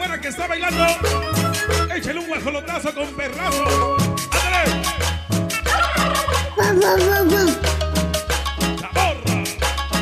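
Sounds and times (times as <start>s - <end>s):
latin dance music: 0.0s - 10.0s
turkey gobble sound effect: 5.5s - 7.6s.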